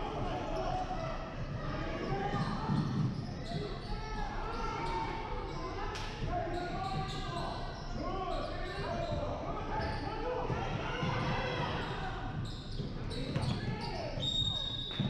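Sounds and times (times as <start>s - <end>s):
crowd chatter: 0.0s - 15.0s
basketball bouncing on court: 2.4s - 3.7s.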